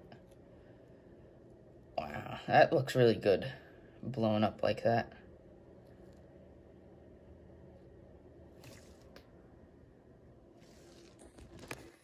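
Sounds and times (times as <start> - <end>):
faint low room hum: 0.0 - 12.0
soft handling clicks and rustles: 10.6 - 12.0.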